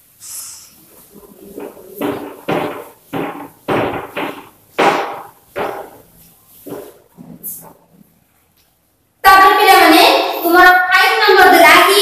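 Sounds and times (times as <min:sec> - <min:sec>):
duster rubbing on chalkboard: 0:00.7 - 0:07.8.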